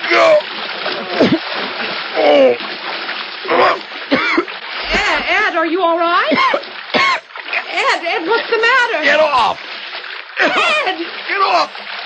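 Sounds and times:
water splashing in a pool: 0.0 - 12.0.

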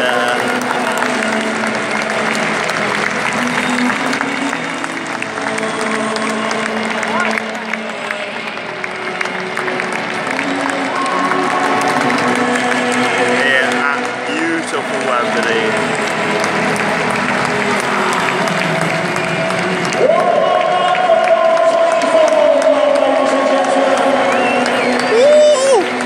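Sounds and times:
music playing: 0.0 - 26.0
stadium crowd applauding and chattering: 0.0 - 26.0.

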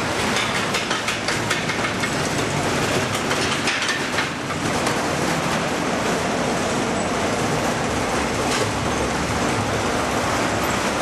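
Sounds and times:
roller coaster wheels rumbling: 0.0 - 11.0.

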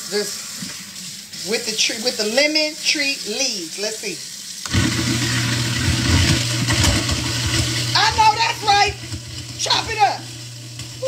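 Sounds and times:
garbage disposal grinding: 0.0 - 11.0.

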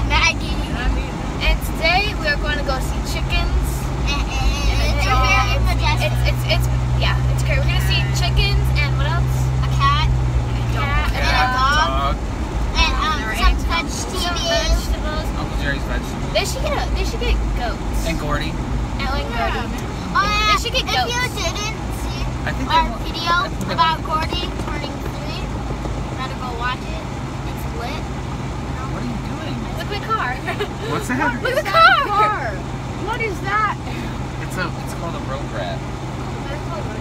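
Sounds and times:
car engine and road drone: 0.0 - 37.0.

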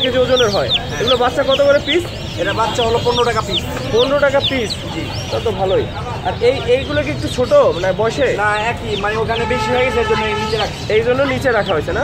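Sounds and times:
chicks peeping: 0.0 - 12.0
people talking: 0.0 - 12.0.

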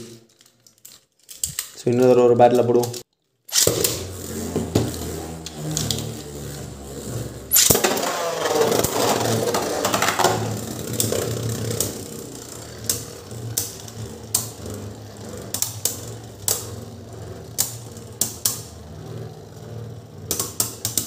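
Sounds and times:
spinning tops whirring: 3.5 - 21.0
spinning tops clacking: 7.4 - 19.4.

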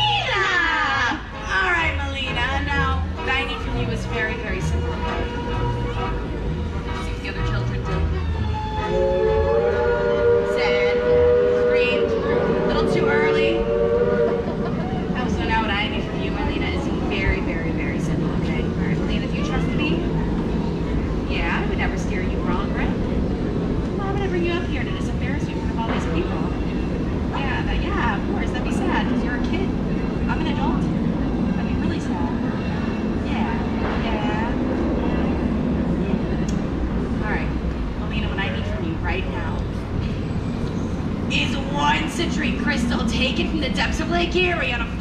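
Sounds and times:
crowd chatter: 0.0 - 45.0
steady low rumble: 0.0 - 45.0.

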